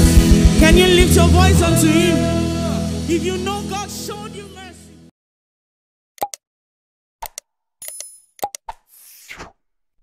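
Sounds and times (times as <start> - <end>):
mouse click sounds: 7.2 - 8.8.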